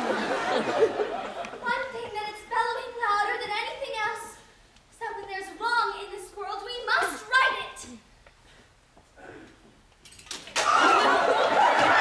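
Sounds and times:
crowd laughing and cheering: 0:00.0 - 0:02.0, 0:10.6 - 0:12.0.

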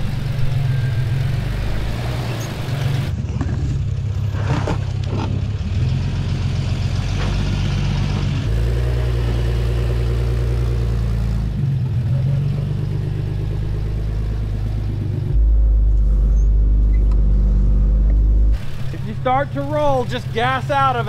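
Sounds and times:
car engine running at low revs: 0:00.0 - 0:21.0.

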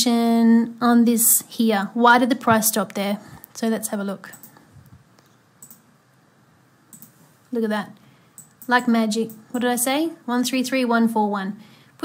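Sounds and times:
computer mouse clicks: 0:04.3 - 0:05.9, 0:06.9 - 0:07.2, 0:08.4 - 0:09.5.

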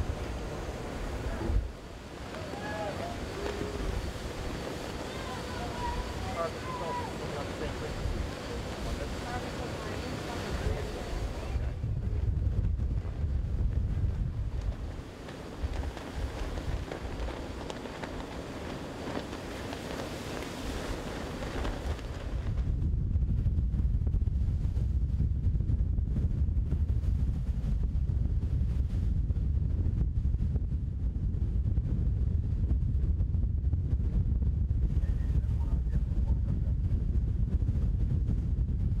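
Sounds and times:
steady hiss: 0:00.0 - 0:11.7, 0:14.6 - 0:22.4
wind buffeting microphone: 0:00.0 - 0:39.0.

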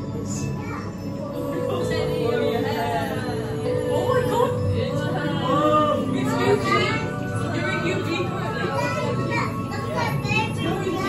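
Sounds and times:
background music: 0:00.0 - 0:11.0
children and adults talking: 0:00.0 - 0:11.0.

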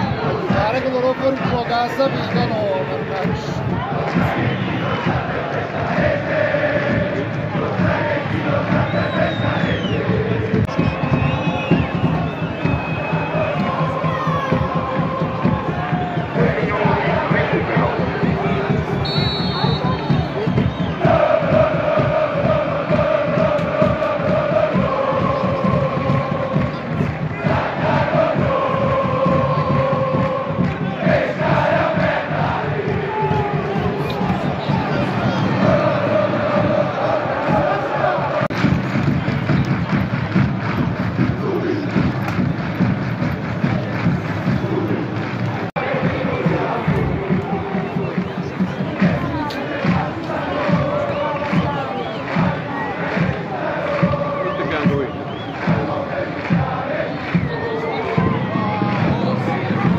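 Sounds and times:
crowd noise: 0:00.0 - 0:59.9
crowd singing a chant: 0:00.0 - 0:59.9.

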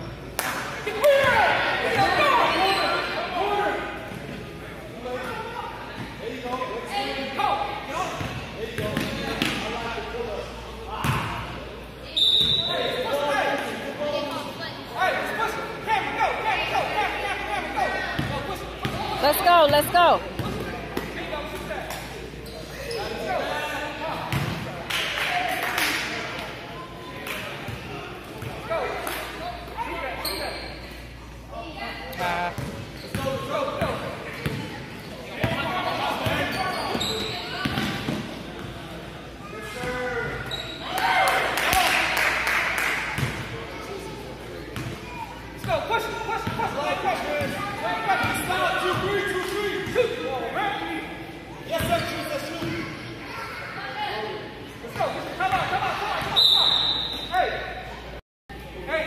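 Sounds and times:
voices of players and spectators: 0:00.0 - 0:59.0
basketball bouncing on court: 0:18.2 - 0:19.1, 0:19.8 - 0:21.1, 0:24.3 - 0:24.6, 0:32.6 - 0:34.6.

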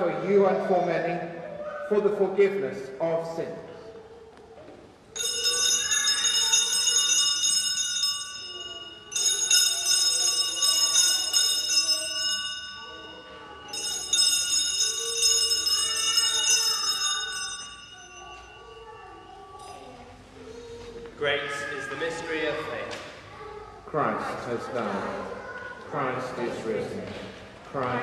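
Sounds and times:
bright high bell rings: 0:05.1 - 0:20.6.

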